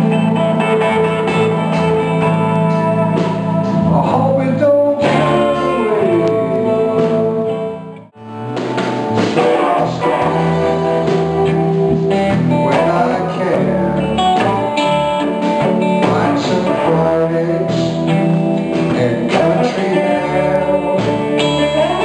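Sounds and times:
band music with guitars: 0.0s - 22.0s.

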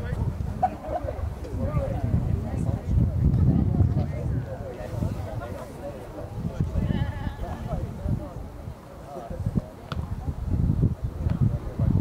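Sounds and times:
voices shouting on a field: 0.0s - 10.3s.

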